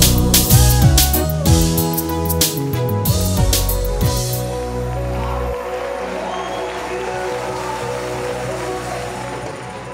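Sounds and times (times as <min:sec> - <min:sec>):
gospel band music: 0:00.0 - 0:09.7.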